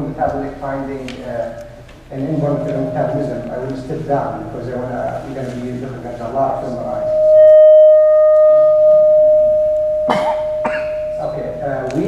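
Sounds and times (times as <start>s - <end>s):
microphone feedback ringing tone: 6.5s - 12.0s.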